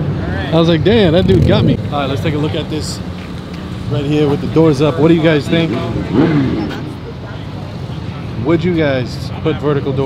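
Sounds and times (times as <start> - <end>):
outdoor background rumble: 0.0 - 8.7
voice: 0.3 - 3.0.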